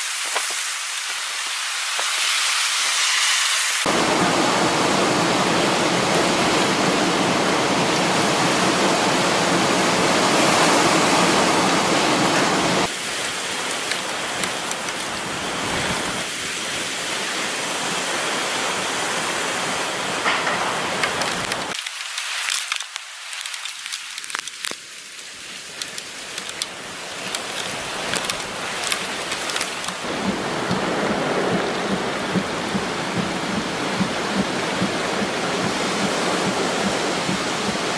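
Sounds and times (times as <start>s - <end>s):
driving rain: 0.0s - 37.9s
hurricane wind: 0.0s - 37.9s.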